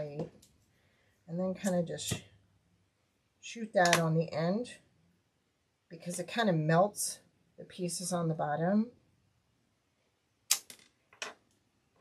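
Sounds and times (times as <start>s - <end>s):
sharp clicks of small hard objects: 10.5s - 11.6s.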